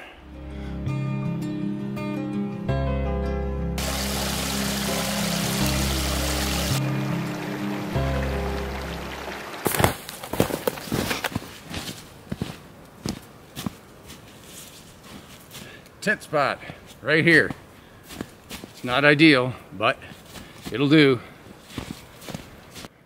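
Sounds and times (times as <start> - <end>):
background music: 0.0 - 9.7
stream trickling among rocks: 3.8 - 6.8, 8.4 - 10.8
footsteps crunching in snow: 9.6 - 15.8, 16.6 - 19.0, 20.0 - 22.9.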